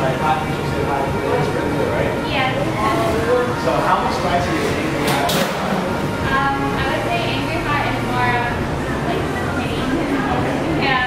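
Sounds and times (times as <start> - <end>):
background music: 0.0 - 11.0
people talking: 0.0 - 11.0.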